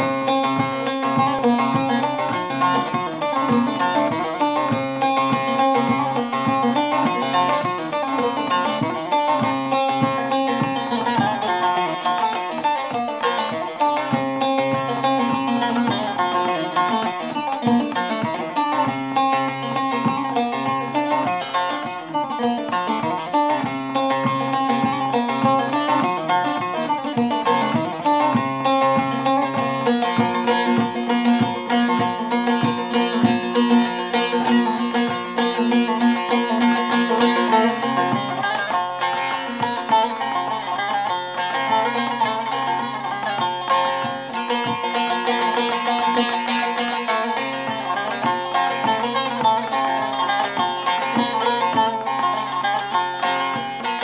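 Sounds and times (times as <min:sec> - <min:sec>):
long-necked lute folk melody: 0:00.0 - 0:54.0.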